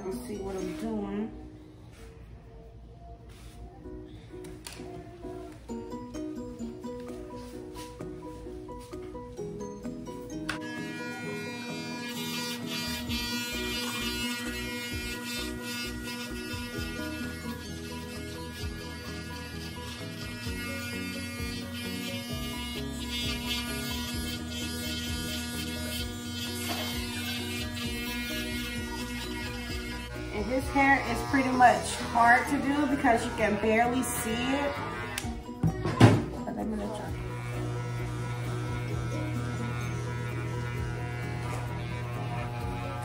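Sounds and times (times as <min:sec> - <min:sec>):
background music with a beat: 0:05.5 - 0:10.6
electric hair clippers buzzing: 0:10.4 - 0:35.5, 0:37.0 - 0:43.0.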